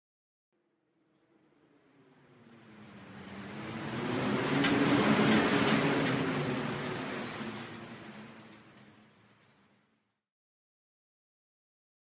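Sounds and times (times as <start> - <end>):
low drone: 0.6 - 9.9.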